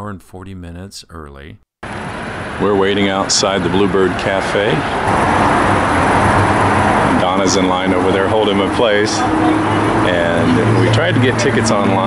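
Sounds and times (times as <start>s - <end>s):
vehicle passing close: 1.8s - 12.0s.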